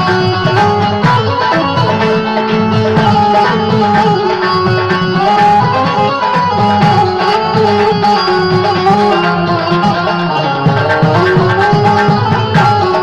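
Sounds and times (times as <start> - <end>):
hand drum rhythm: 0.0 - 13.0
harmonium melody: 0.0 - 13.0.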